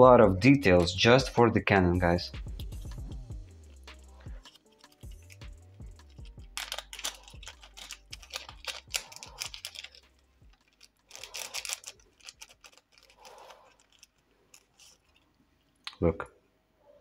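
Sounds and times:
plastic bag crinkling: 0:04.4 - 0:15.9.

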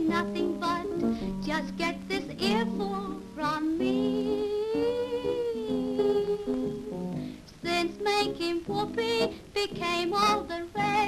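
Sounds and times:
grand piano: 0:00.0 - 0:11.0
woman singing: 0:00.0 - 0:11.0.

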